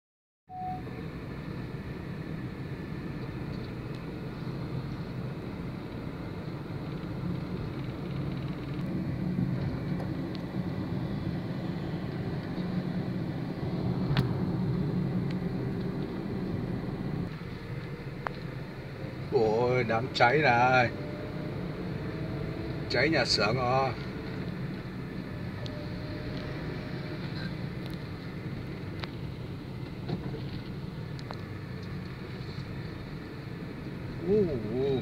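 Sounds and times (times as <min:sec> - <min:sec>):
low outdoor rumble: 0:00.6 - 0:21.0, 0:21.6 - 0:35.0.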